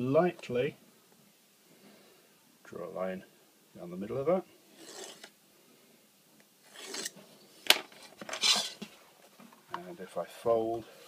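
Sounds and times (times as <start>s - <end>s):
pencil scratching along ruler: 4.7s - 5.3s, 6.7s - 7.2s.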